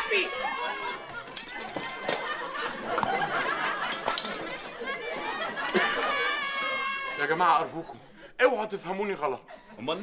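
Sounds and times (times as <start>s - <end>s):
laughter: 0.2s - 7.2s.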